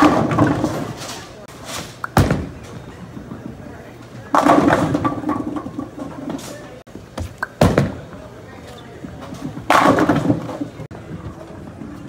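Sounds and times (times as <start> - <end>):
bowling ball crashing into pins: 0.0 - 1.1, 4.3 - 6.5, 9.3 - 10.9
bowling pins clattering: 0.0 - 1.4, 2.0 - 8.1, 9.0 - 12.0.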